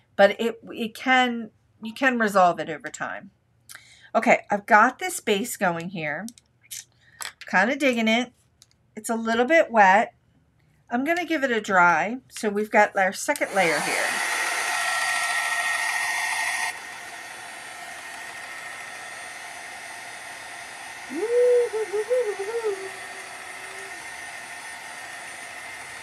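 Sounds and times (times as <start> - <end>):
heat tool blowing hot air: 13.4 - 26.0.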